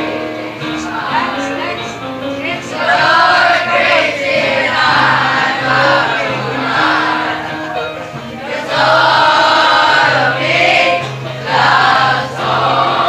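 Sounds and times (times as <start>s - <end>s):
children's choir singing: 0.0s - 13.0s.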